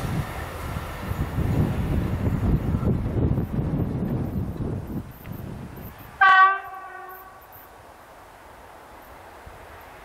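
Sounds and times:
train horn blast: 6.2s - 7.4s.

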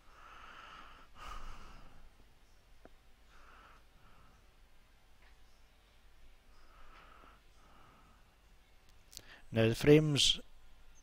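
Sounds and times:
person breathing: 0.0s - 2.6s, 3.2s - 4.8s, 6.5s - 8.6s, 9.2s - 9.5s.

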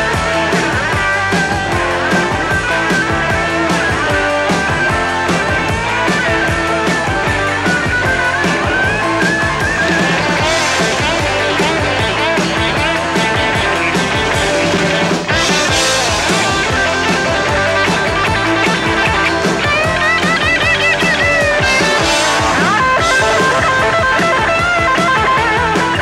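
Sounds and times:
bass guitar: 0.0s - 26.0s
drums: 0.0s - 26.0s
electric guitar solo: 0.0s - 26.0s.

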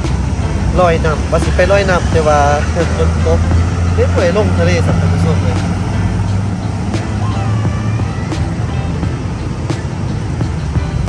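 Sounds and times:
background music: 0.0s - 11.0s
vehicle engines running: 0.0s - 11.0s.

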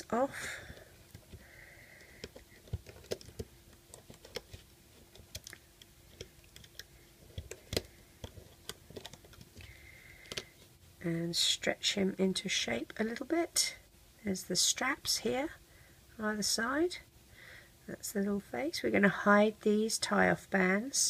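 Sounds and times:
small clicks and taps: 2.0s - 10.5s.

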